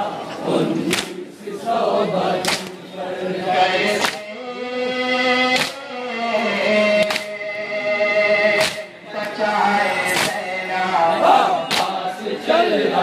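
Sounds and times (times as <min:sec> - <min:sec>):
man singing lament into microphone: 0:03.6 - 0:12.7
men beating their chests: 0:05.6 - 0:05.8, 0:08.6 - 0:08.9, 0:10.1 - 0:10.5, 0:11.7 - 0:12.0.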